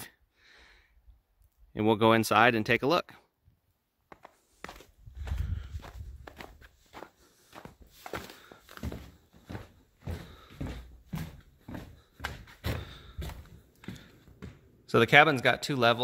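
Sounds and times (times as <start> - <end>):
footsteps on wooden deck: 4.1 - 14.8.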